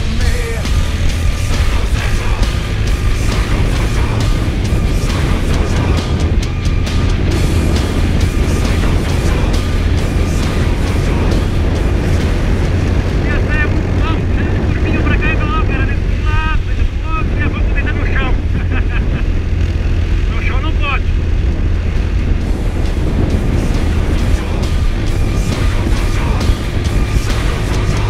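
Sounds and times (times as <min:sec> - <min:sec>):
motorcycle engine rumble: 0:00.0 - 0:28.0
wind noise: 0:00.0 - 0:28.0.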